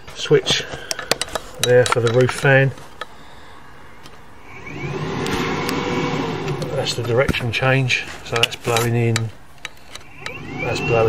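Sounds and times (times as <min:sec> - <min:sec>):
vent fan motor whirring: 0:04.3 - 0:08.7, 0:09.7 - 0:11.0.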